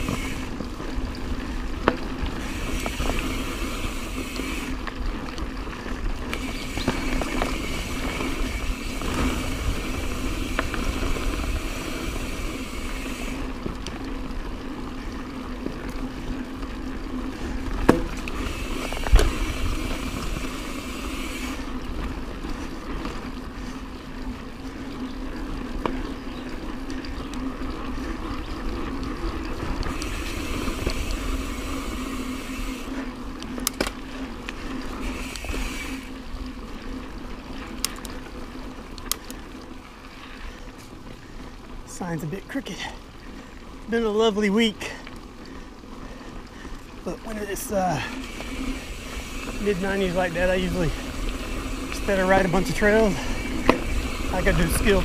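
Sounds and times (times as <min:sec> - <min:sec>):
bike tyre and frame noise: 0:00.0 - 0:55.0
bike knocking over bumps: 0:17.7 - 0:20.4.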